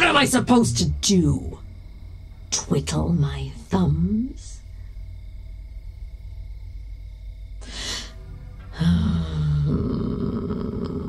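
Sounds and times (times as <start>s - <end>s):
faint sustained high tones: 0.0s - 10.1s
low dark ambient drone: 0.0s - 11.0s.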